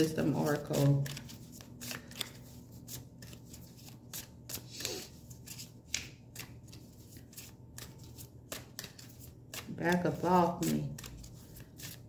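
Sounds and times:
cards being shuffled: 0.2 - 12.0.

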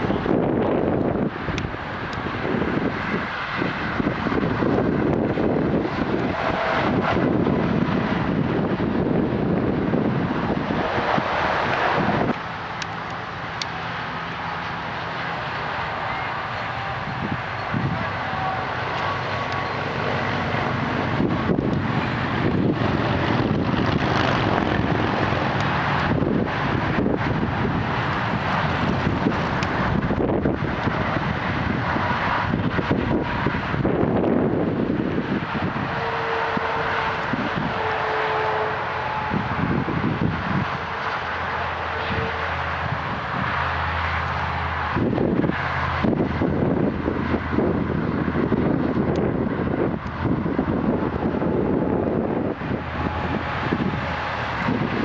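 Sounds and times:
distant engine drone: 0.0 - 55.0
wind on microphone: 0.0 - 55.0.

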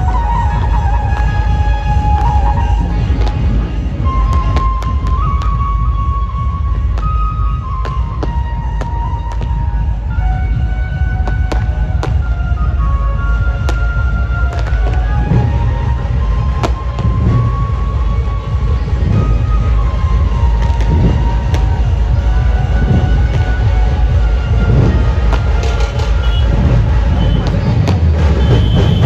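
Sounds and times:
loud bass-heavy procession music: 0.0 - 29.0.

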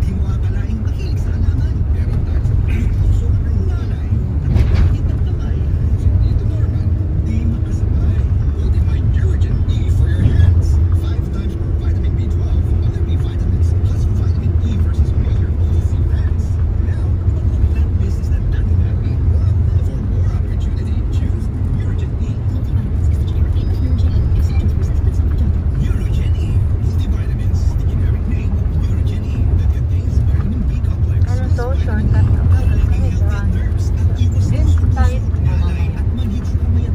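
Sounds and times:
car engine and road noise: 0.0 - 36.9
faint voices: 0.0 - 36.9.

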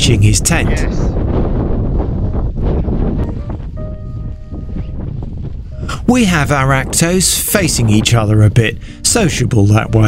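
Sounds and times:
wind buffeting microphone: 0.0 - 10.0
faint held music notes: 3.2 - 10.0.

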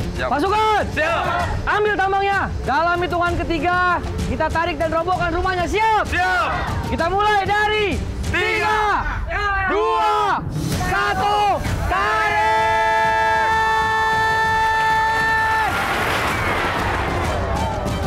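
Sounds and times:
men shouting in unison: 8.3 - 15.5
house collapsing crash: 15.2 - 17.8.

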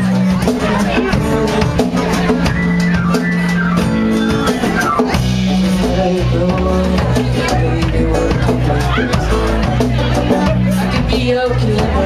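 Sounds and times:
drum kit beat: 0.0 - 12.0
guitar playing: 0.0 - 12.0
held bass notes: 0.0 - 12.0.

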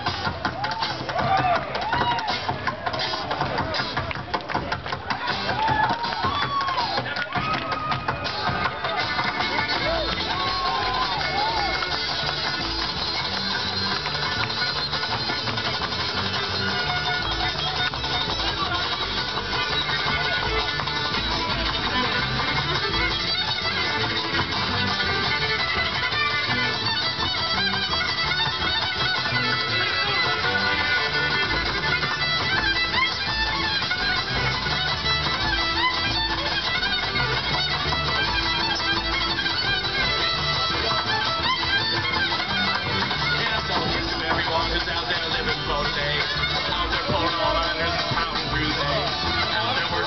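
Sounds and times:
fiddle: 0.0 - 50.0
string band playing: 0.0 - 50.0.

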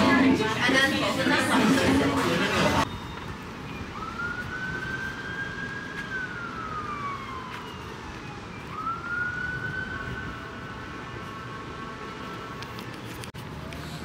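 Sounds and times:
street noise: 0.0 - 14.0
emergency vehicle siren wailing: 2.7 - 12.7.

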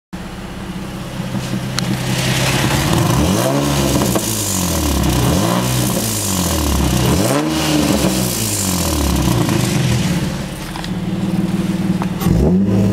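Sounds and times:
car engine idling and revving: 0.2 - 12.9.

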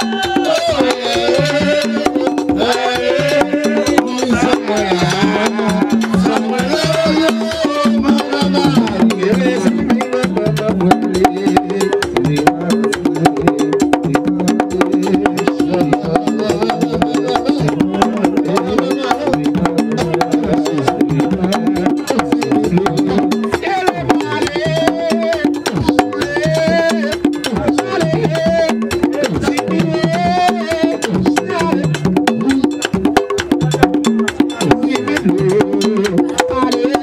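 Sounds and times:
hand drums and percussion: 0.0 - 37.0
people singing: 0.0 - 37.0.

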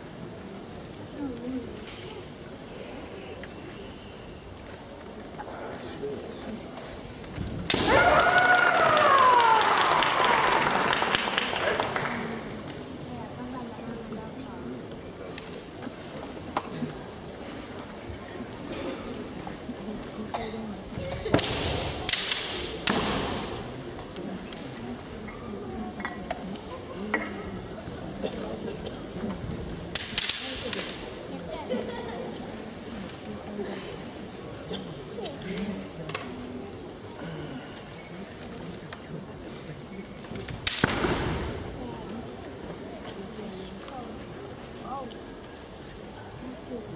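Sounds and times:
bamboo swords clacking: 21.4 - 23.4, 29.9 - 31.0.

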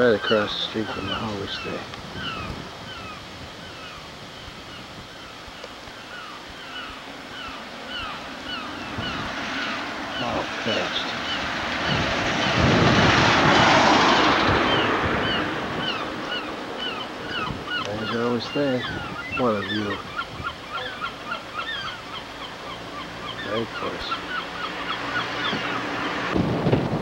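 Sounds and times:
broad rushing noise: 0.0 - 27.0
bird chirping: 14.6 - 26.3.

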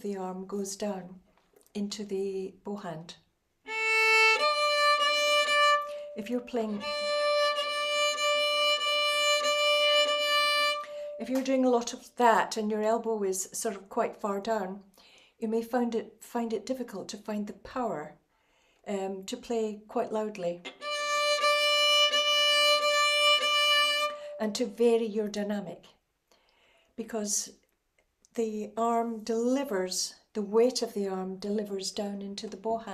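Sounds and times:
violin bowing high note: 3.7 - 11.2, 20.7 - 24.4.

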